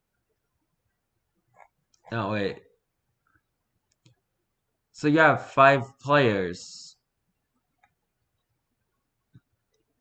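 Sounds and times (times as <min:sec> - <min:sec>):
computer mouse clicks: 0:03.3 - 0:04.2, 0:07.7 - 0:08.0.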